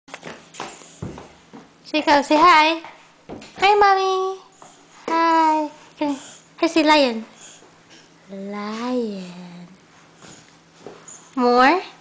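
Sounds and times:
woman speaking: 1.9s - 2.9s, 3.6s - 7.4s, 8.3s - 9.8s, 11.3s - 12.0s.

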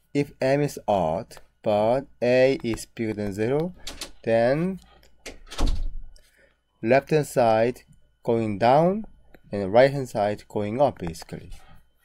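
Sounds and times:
man speaking: 0.2s - 4.8s, 6.8s - 11.7s.

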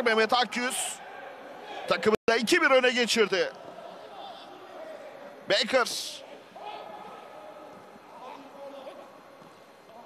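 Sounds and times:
faint shouts of players: 6.2s - 9.2s.

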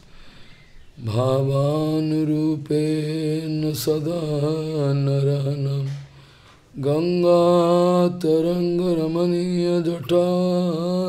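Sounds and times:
man chanting a prayer: 1.0s - 6.0s, 6.8s - 11.0s.

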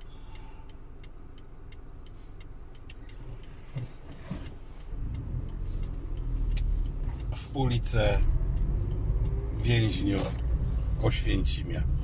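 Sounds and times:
car engine: 0.0s - 12.0s
turn indicator ticking: 0.0s - 12.0s.

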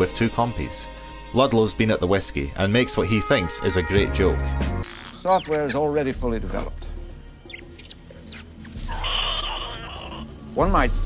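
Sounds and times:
low music bed: 0.0s - 11.0s
high creature chirps: 7.5s - 10.3s.

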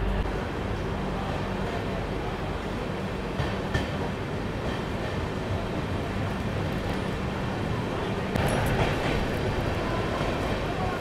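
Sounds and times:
train wheels rumbling on track: 0.0s - 11.0s
train rattling burst: 6.8s - 11.0s.

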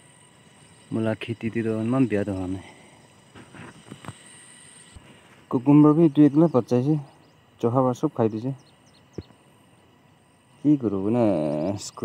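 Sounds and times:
field ambience: 0.0s - 12.0s
thin steady high tones: 0.0s - 12.0s.

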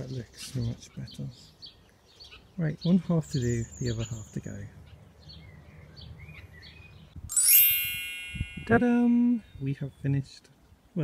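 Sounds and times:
birds chirping: 0.0s - 10.3s
shimmering chime: 7.3s - 9.1s.

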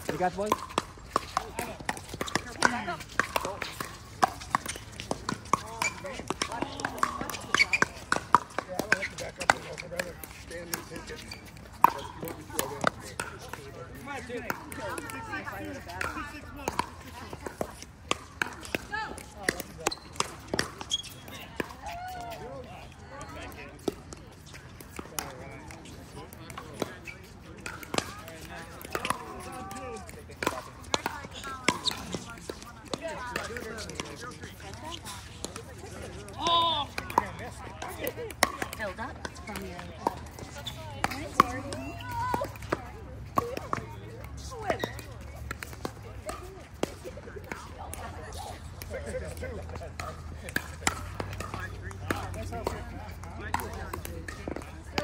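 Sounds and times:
paddles striking plastic ball: 0.0s - 13.6s
people talking: 1.3s - 4.6s, 5.2s - 17.8s, 18.5s - 55.0s.

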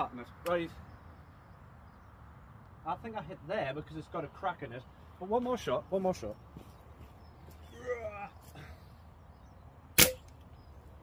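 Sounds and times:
air rifle shot: 10.0s - 10.4s.

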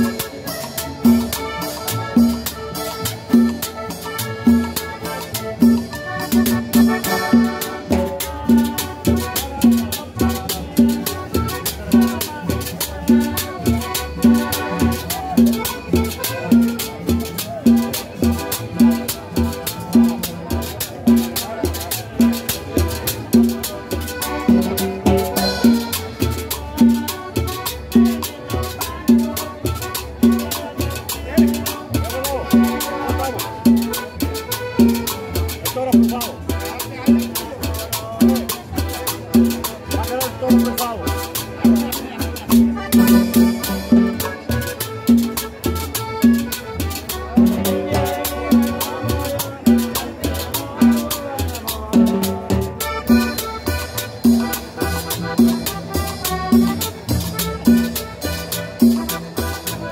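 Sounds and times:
hand percussion: 0.0s - 59.9s
live cumbia band playing: 0.0s - 59.9s
upright double bass: 0.0s - 59.9s.

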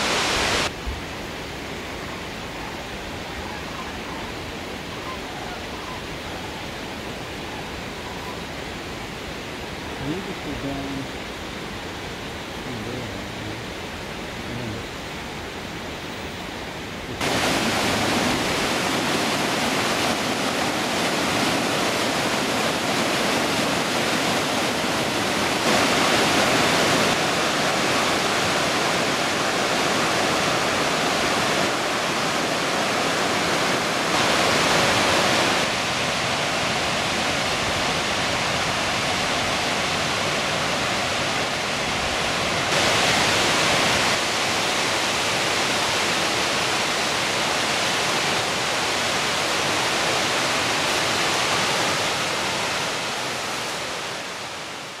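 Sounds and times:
creek water rushing over rocks: 0.0s - 55.0s
waterfall roar: 0.0s - 55.0s.

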